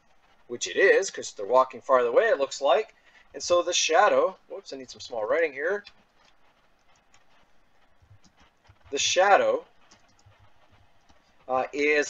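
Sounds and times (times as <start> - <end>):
computer keyboard typing: 4.9 - 11.4.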